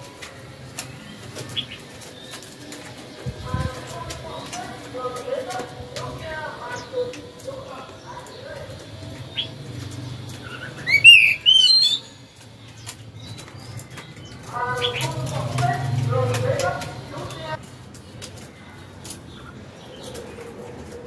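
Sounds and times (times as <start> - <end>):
bird whistled song: 10.4 - 12.4.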